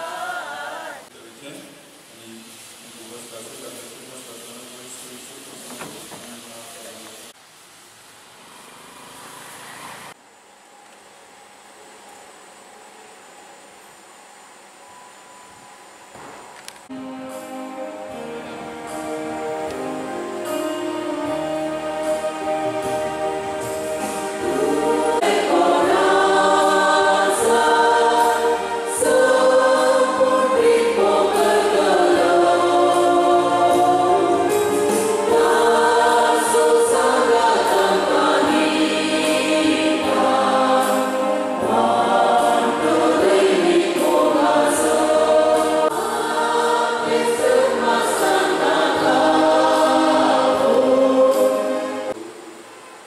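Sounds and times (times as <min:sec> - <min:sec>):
choir singing a hymn: 0:00.0 - 0:01.1, 0:16.9 - 0:52.2
low accompanying notes: 0:16.9 - 0:53.0.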